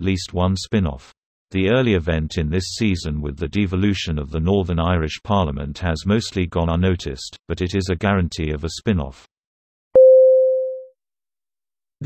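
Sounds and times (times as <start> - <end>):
electronic beep: 10.0 - 10.9.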